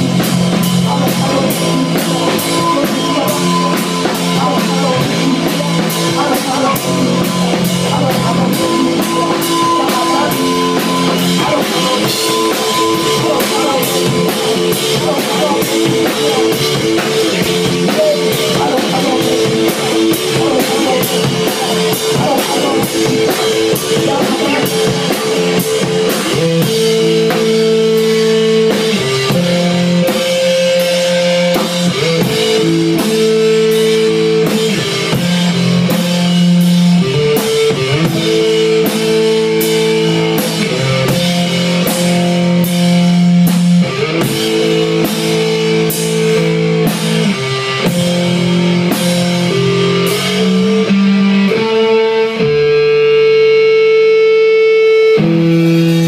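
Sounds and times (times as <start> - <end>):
drum kit with cymbals: 0.0 - 56.0
electric guitar riffs: 0.0 - 56.0.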